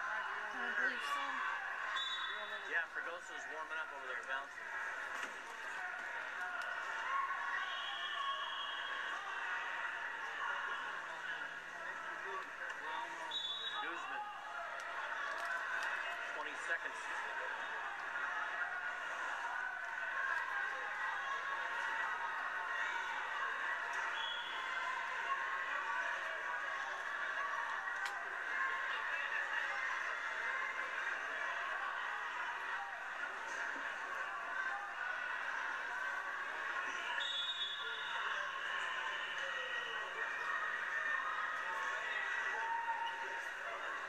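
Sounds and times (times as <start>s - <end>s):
crowd chatter through tv speaker: 0.0s - 44.0s.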